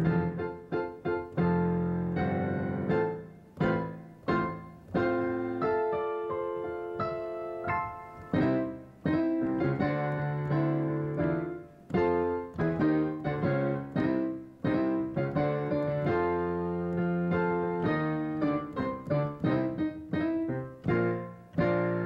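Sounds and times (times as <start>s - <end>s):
keyboard piano chords: 0.0s - 22.0s.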